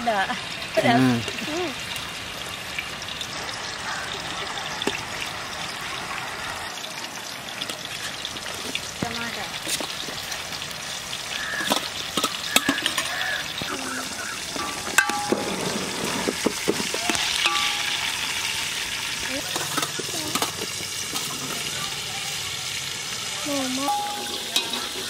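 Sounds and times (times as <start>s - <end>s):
ladle scraping steel plate: 14.4s - 18.4s, 23.9s - 25.0s.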